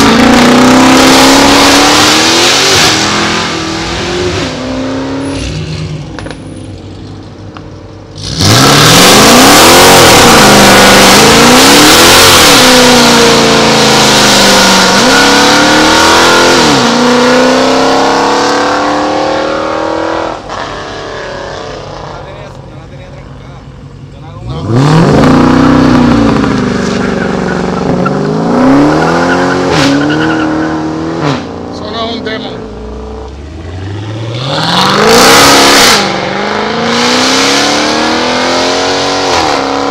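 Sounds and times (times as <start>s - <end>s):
car engine revving at launch: 0.0s - 6.5s, 8.2s - 22.1s, 24.4s - 39.9s.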